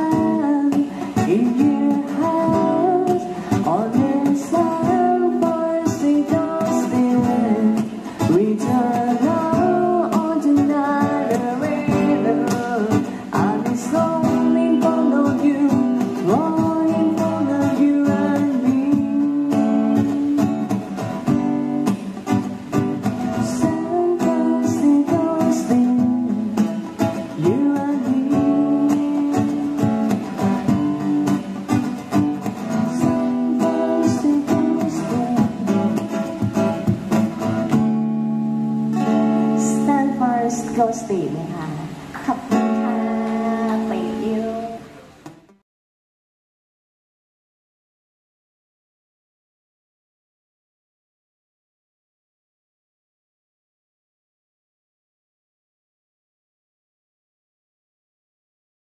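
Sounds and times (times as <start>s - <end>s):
woman singing through pa: 0.0s - 20.7s, 23.4s - 30.2s, 32.8s - 36.4s, 39.6s - 45.0s
acoustic guitar strumming: 0.0s - 45.6s.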